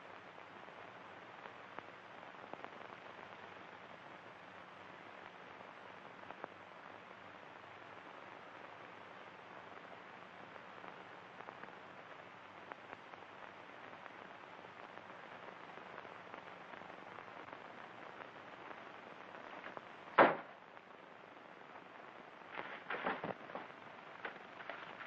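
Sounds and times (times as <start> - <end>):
film soundtrack hiss: 0.0 - 25.0
weak crackles: 0.0 - 25.0.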